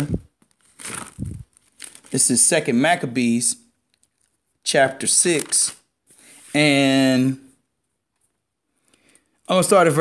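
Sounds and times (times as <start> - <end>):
paper pages rustling: 0.4 - 2.2, 5.2 - 6.6.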